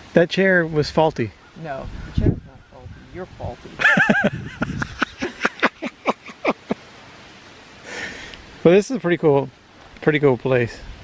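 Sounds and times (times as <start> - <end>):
person laughing: 3.8 - 6.8.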